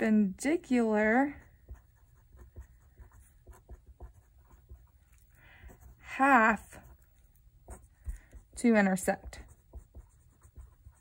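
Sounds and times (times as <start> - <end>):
pen scratching on paper: 1.0 - 11.0.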